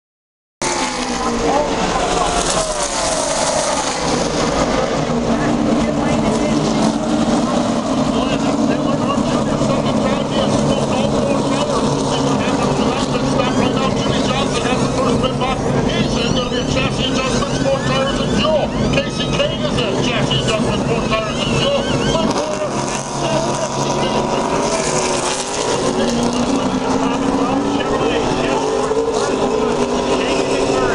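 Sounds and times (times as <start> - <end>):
race car engines droning: 0.6 - 30.9.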